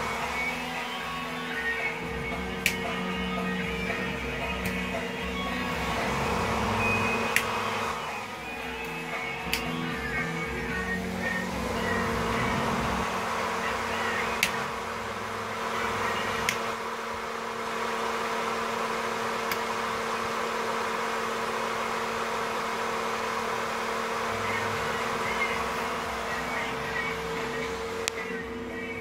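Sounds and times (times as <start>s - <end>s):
electric motor buzzing hum: 0.0s - 29.0s
rocker switch clicks: 2.5s - 3.1s, 4.5s - 4.9s, 7.3s - 7.7s, 8.8s - 9.9s, 14.4s - 14.7s, 16.4s - 16.7s.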